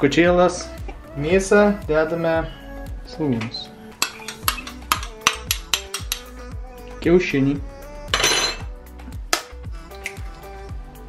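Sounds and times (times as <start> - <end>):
background music: 0.0 - 11.0
egg shell cracking: 4.0 - 6.3.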